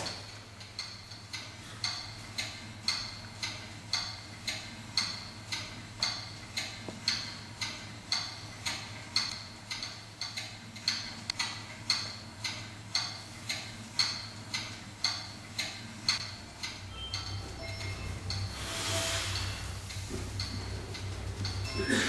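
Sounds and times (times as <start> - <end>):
steady clock-like ticking: 0.0 - 22.0.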